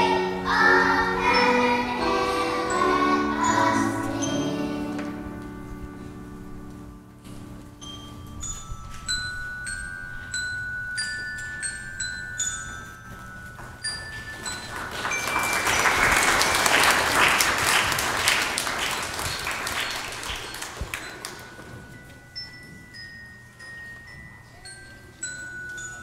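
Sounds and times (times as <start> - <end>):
bell-like struck notes: 0.0 - 6.1
congregation applauding: 14.6 - 21.4.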